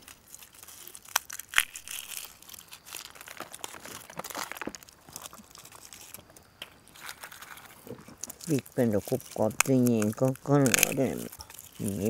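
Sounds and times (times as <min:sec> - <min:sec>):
dry plant material crackling: 0:00.0 - 0:12.0.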